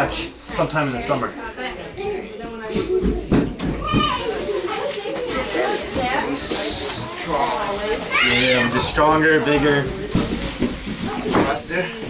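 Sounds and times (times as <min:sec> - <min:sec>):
lively background chatter: 0:00.0 - 0:12.0.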